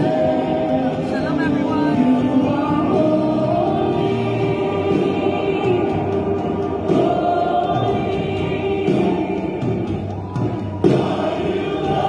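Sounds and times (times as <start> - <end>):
choir singing held notes: 0.0 - 12.0.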